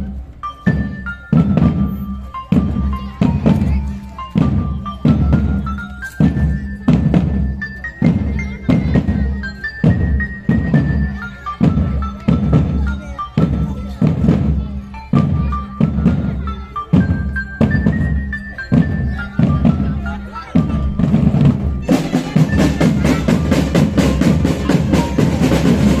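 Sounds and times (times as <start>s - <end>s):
marching drum band playing: 0.0s - 26.0s.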